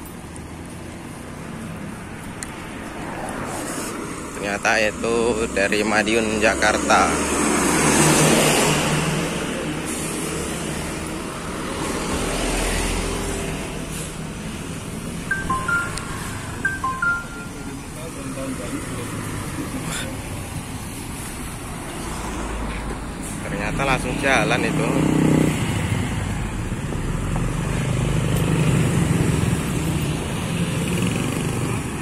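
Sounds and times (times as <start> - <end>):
steady traffic noise: 0.0 - 32.0
two-note beeps: 15.3 - 17.9.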